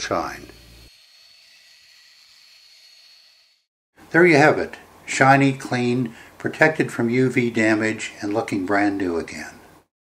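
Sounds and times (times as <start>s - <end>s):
drill buffing wheel whine: 0.0s - 3.7s.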